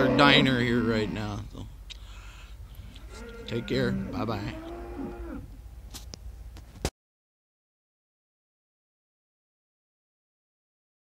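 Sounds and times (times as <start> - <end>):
cattle mooing: 0.0 - 1.4, 3.0 - 5.5.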